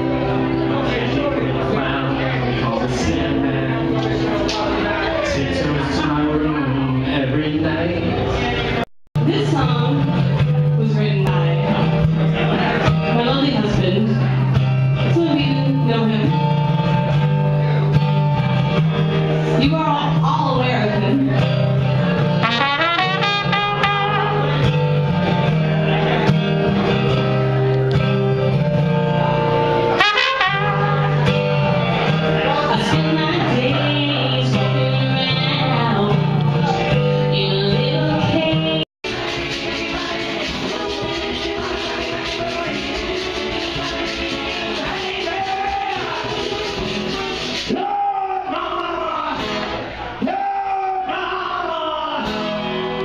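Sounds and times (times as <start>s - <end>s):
strummed acoustic guitar: 0.0s - 50.8s, 51.4s - 53.0s
man singing: 0.8s - 8.8s, 32.4s - 49.6s, 50.2s - 53.0s
trumpet playing melody: 22.4s - 25.0s, 29.9s - 31.6s.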